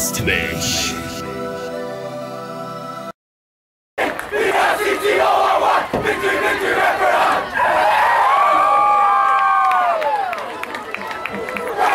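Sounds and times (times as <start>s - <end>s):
group of men yelling: 4.4s - 9.8s.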